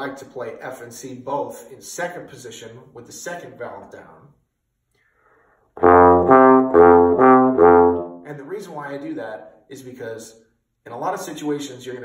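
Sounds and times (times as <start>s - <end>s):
bass trombone sustained notes: 5.8s - 8.3s.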